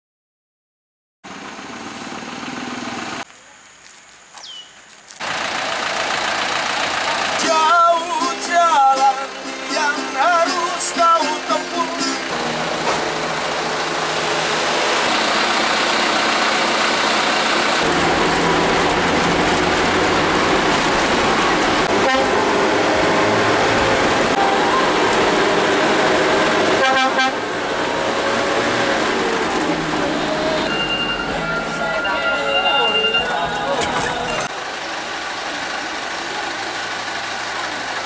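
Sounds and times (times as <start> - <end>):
bus engine and road noise: 1.2 - 38.0
horn toots: 21.9 - 22.5, 26.6 - 27.5.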